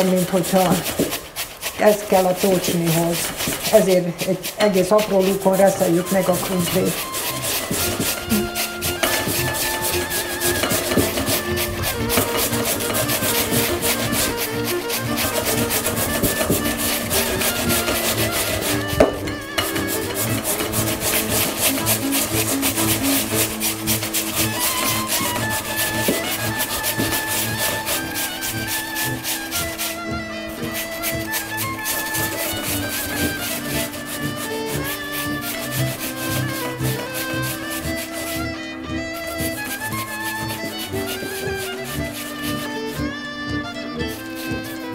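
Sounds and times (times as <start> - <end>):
music: 0.0 - 44.9
potatoes grated on metal grater: 0.0 - 44.9.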